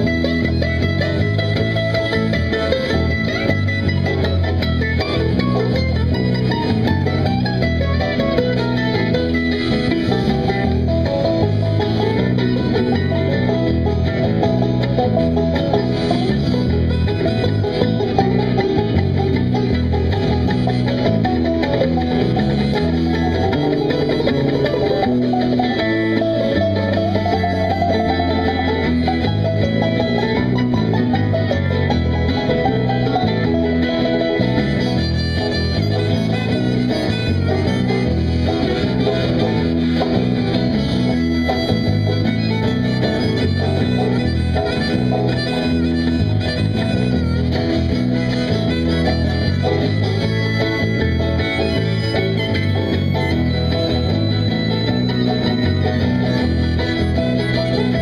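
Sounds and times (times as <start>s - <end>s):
acoustic band playing instrumental: 0.0s - 58.0s.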